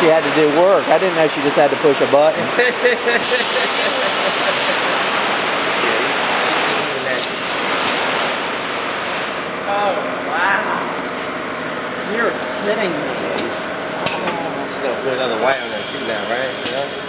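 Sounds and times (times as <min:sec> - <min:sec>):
printing machinery running: 0:00.0 - 0:17.0
person laughing: 0:02.4 - 0:05.4.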